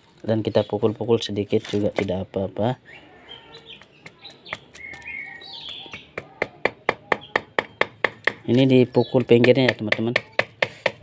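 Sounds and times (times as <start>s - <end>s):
birds chirping: 0.2s - 10.9s.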